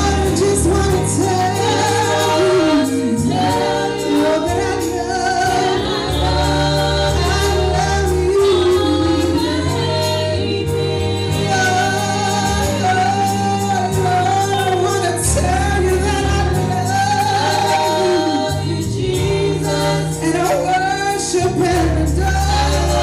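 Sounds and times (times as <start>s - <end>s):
gospel group singing: 0.0s - 23.0s
held bass notes: 0.0s - 23.0s
instrumental accompaniment: 0.0s - 23.0s.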